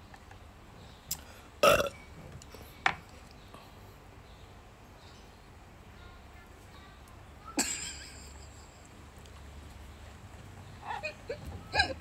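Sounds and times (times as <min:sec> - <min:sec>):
loud burp: 0:01.6 - 0:02.0.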